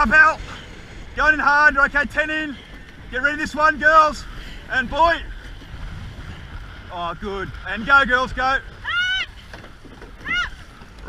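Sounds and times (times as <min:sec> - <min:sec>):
rumble of wind and water: 0:00.0 - 0:11.0.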